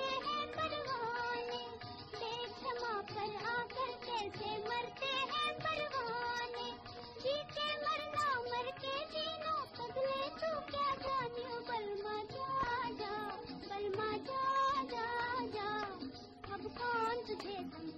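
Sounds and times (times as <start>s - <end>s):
woman singing: 0.0s - 17.9s.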